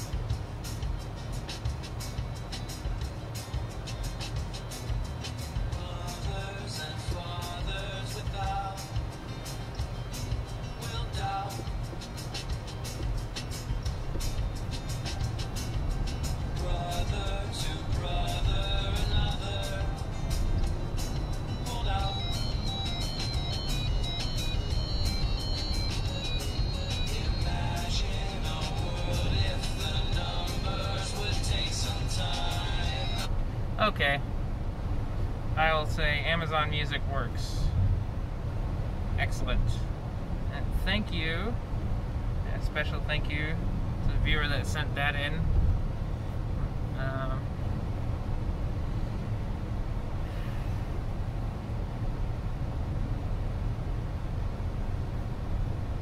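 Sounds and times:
song with dense beat on car speakers: 0:00.0 - 0:33.6
low rumble of tyres and road: 0:00.0 - 0:56.0.

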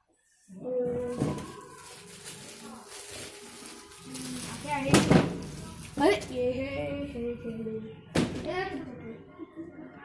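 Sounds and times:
people speaking: 0:00.5 - 0:10.0.

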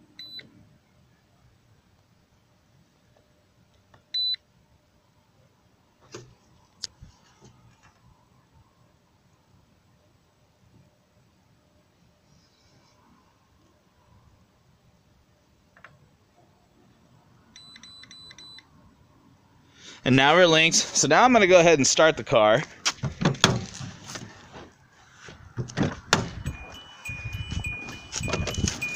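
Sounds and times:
scan tool beeping: 0:26.4 - 0:28.9.

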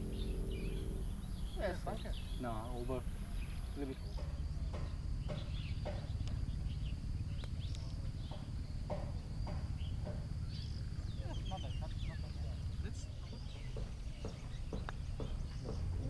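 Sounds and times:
bird-like calls: 0:00.0 - 0:16.0
wind rumble on microphone: 0:00.0 - 0:16.0.

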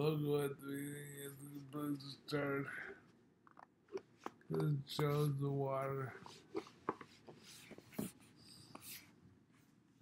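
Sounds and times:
person speaking: 0:00.0 - 0:03.2, 0:04.0 - 0:08.1.

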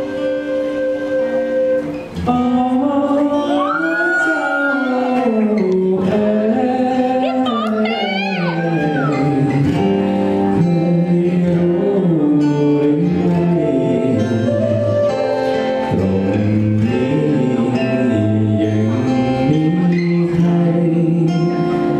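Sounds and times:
wooden flute: 0:00.0 - 0:05.8, 0:07.4 - 0:09.7, 0:13.0 - 0:20.4
man singing: 0:02.2 - 0:21.9
strummed acoustic guitar: 0:08.5 - 0:21.9.

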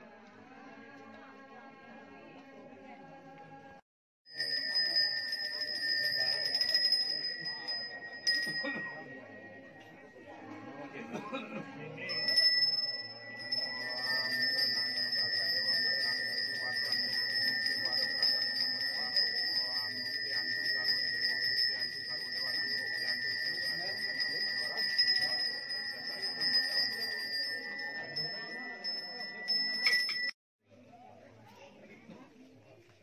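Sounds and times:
voices: 0:00.0 - 0:33.0
hand bell ringing: 0:04.3 - 0:10.1, 0:12.1 - 0:30.4.

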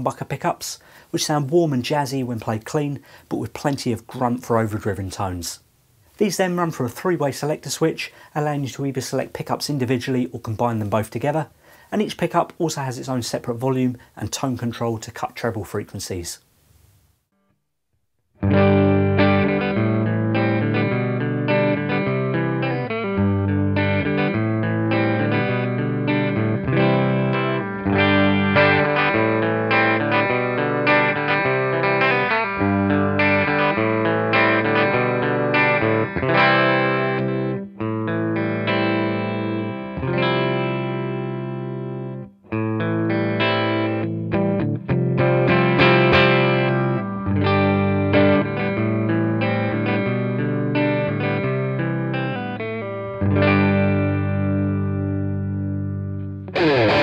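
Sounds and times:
overdriven electric guitar riffs: 0:18.4 - 0:57.0.

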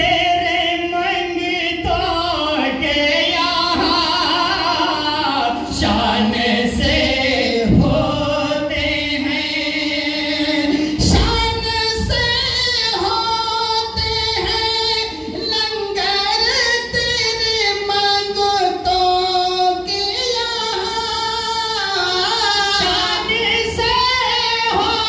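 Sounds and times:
man singing unaccompanied: 0:00.0 - 0:25.0.

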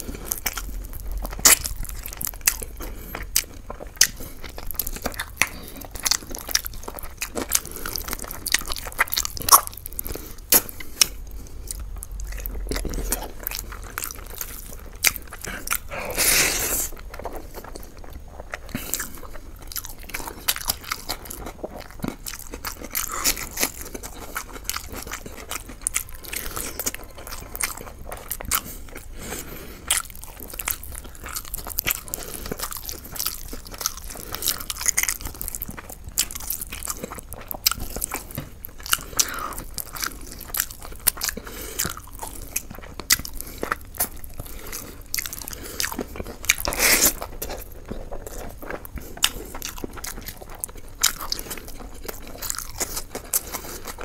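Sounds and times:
wet chewing and crunching: 0:00.0 - 0:54.0.

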